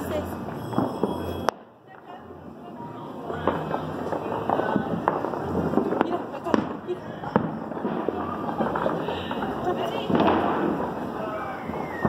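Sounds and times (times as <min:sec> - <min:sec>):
firecracker bangs and pops: 0:00.0 - 0:02.1, 0:03.2 - 0:12.0
distant explosions: 0:00.0 - 0:12.0.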